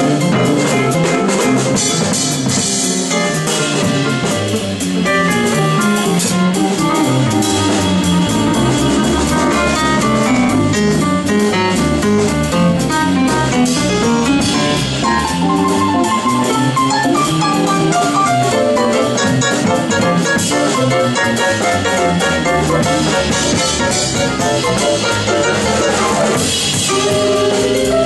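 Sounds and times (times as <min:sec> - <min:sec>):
drum kit: 0:00.0 - 0:28.0
electric bass line: 0:00.0 - 0:28.0
guitar: 0:00.0 - 0:28.0
keyboard: 0:00.0 - 0:28.0.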